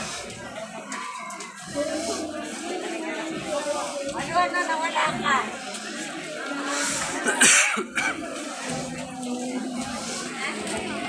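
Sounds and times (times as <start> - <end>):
murmur of street crowd: 0.0 - 11.0
person coughing: 7.3 - 8.2.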